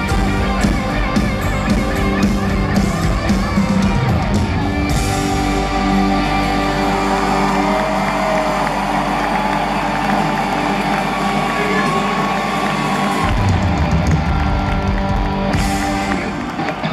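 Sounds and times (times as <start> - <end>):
country-rock band playing: 0.0 - 16.9
crowd cheering: 0.0 - 16.9.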